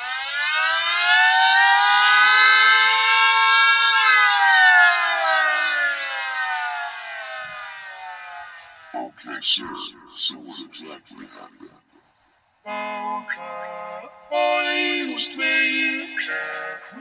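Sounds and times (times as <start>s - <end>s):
emergency siren wailing: 0.0s - 10.0s, 12.7s - 17.0s.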